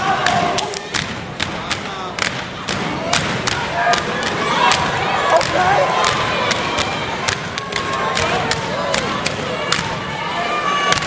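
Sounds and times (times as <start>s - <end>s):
crowd voices and shouts: 0.0s - 11.0s
stomps and hand claps: 0.2s - 10.1s.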